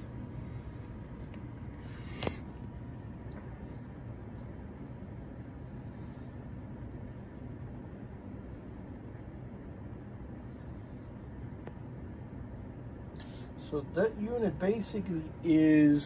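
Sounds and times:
low room hum: 0.0 - 16.0.

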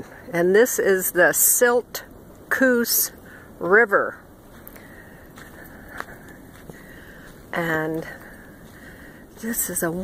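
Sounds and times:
low background hiss: 0.0 - 10.0.

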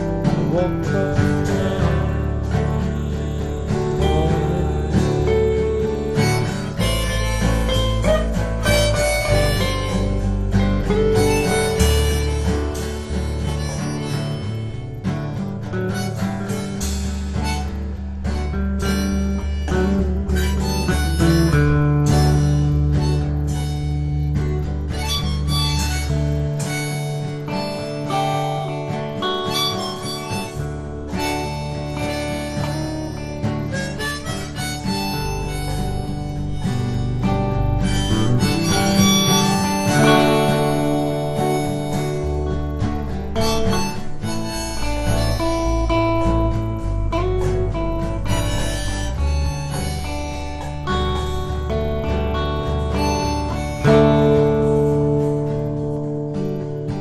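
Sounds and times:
harmonica bending notes: 0.0 - 57.0
low bass notes: 0.0 - 57.0
strummed acoustic guitar: 0.0 - 57.0.

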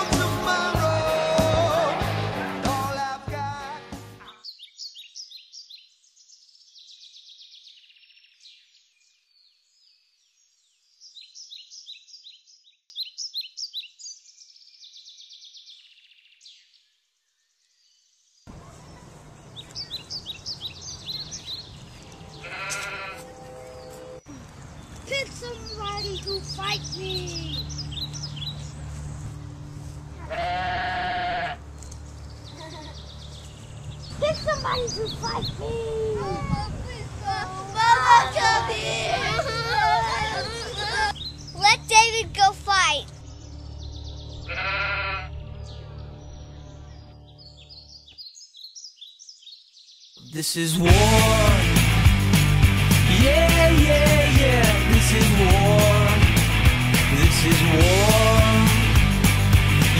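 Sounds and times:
birds chirping: 4.2 - 59.9
bleat-like call: 22.4 - 24.2, 30.2 - 31.6, 44.5 - 45.3.

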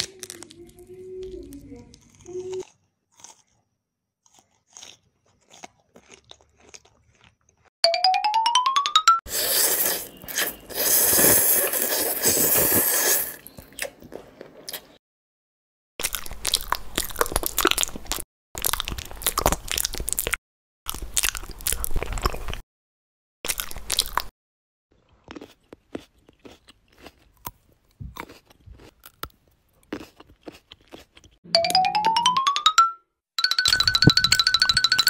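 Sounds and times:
crunching and chewing food: 0.0 - 7.7, 16.0 - 22.6, 23.5 - 24.3, 24.9 - 31.4.

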